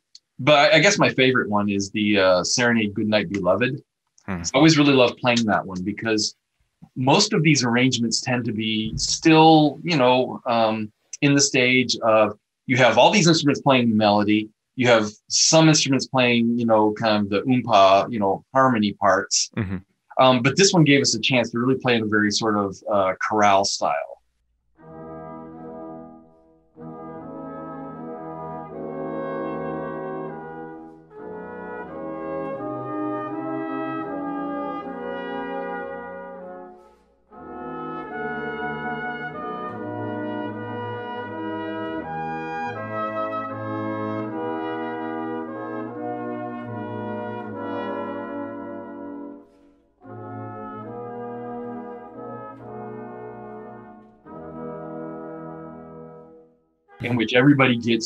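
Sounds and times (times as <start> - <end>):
wind band playing slow chords: 7.0 - 14.0, 26.8 - 36.8, 37.4 - 49.4, 50.0 - 56.1.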